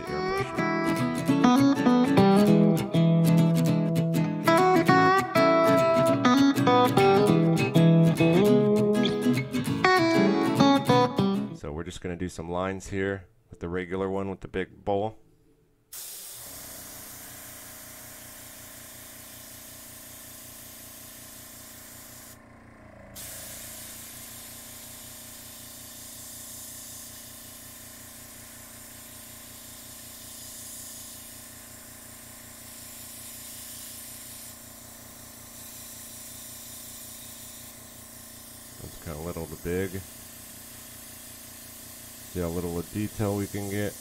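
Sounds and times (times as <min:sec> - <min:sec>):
air compressor humming: 0:00.0 - 0:11.6, 0:15.9 - 0:44.0
airbrush hissing air: 0:15.9 - 0:22.4, 0:23.2 - 0:44.0.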